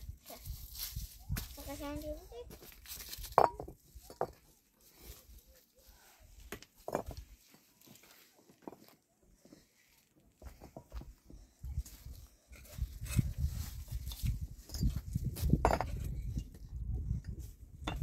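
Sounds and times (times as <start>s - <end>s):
loose stones scraping and knocking: 2.5s - 5.4s, 6.4s - 9.0s, 10.4s - 11.2s, 11.8s - 18.0s.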